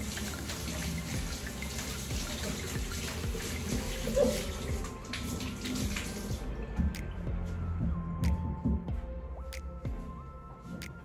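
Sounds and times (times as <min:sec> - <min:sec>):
water running from tap: 0:00.0 - 0:06.5
soft background music: 0:00.0 - 0:11.0.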